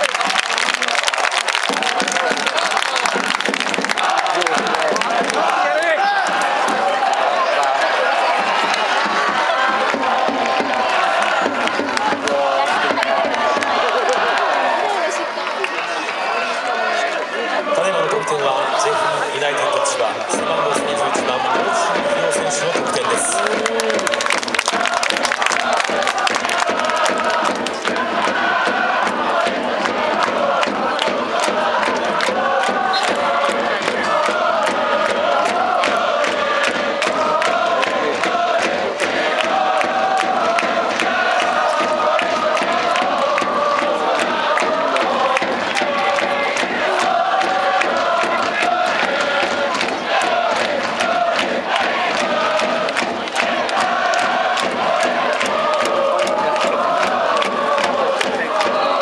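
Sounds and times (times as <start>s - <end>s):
football supporters chanting: 0.0s - 59.0s
steady beat: 17.7s - 59.0s.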